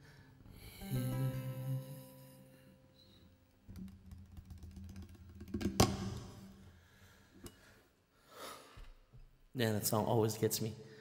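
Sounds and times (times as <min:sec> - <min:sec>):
ukulele chord: 0:00.7 - 0:03.1.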